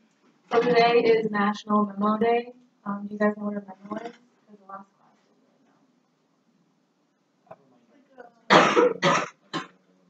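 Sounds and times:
person coughing: 8.5s - 9.7s.

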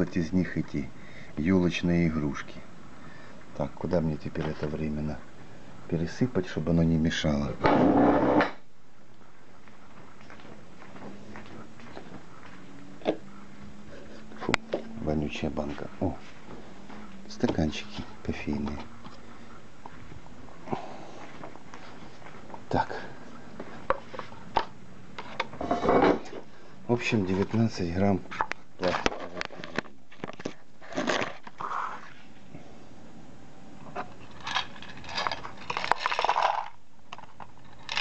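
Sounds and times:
paper cup rustling scrape: 28.8s - 32.4s
plastic parts rattling in glass bowl: 34.3s - 38.0s.

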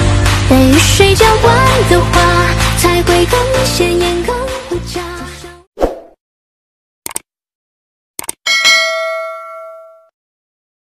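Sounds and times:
music: 0.0s - 5.7s
quick double clicks: 7.1s - 7.3s, 8.2s - 8.4s
bell-like ding: 8.5s - 10.1s.

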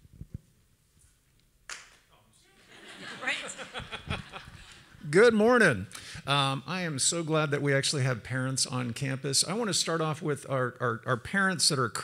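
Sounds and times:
microphone rustle: 0.0s - 1.4s.

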